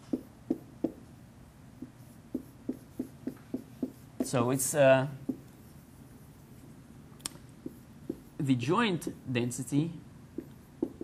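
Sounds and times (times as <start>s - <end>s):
marker writing on whiteboard: 0.0s - 1.1s, 1.8s - 6.6s, 7.5s - 9.4s, 10.3s - 11.0s.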